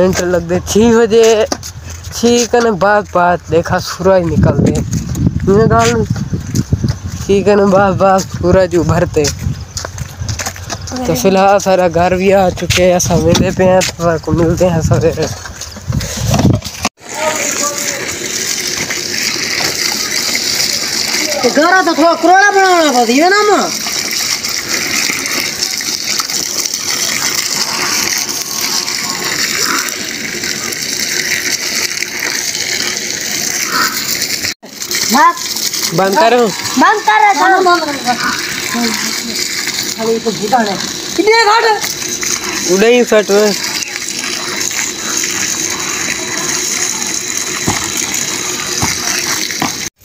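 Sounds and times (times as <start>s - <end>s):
water pouring from a hose: 0.0s - 50.0s
hoe chopping wet mud: 47.5s - 49.9s.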